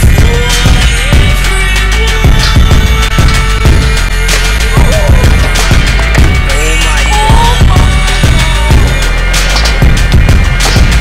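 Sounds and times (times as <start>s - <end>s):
loud hip-hop music: 0.0s - 11.0s.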